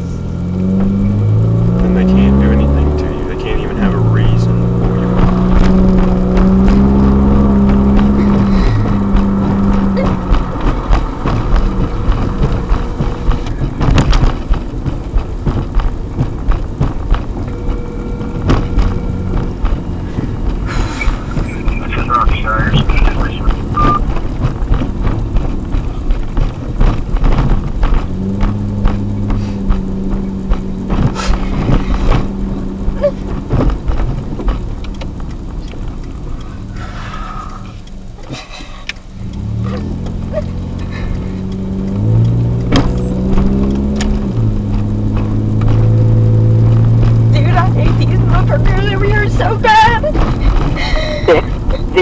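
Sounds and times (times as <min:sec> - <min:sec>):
car engine: 0:00.0 - 0:52.0
road noise inside car: 0:00.0 - 0:52.0
knocks and rattles: 0:00.6 - 0:52.0.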